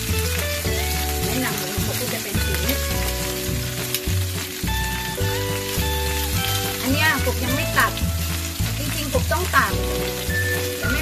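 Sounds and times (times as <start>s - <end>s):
meat sizzling in a frying pan: 0.0s - 11.0s
music with steady bass beat: 0.0s - 11.0s.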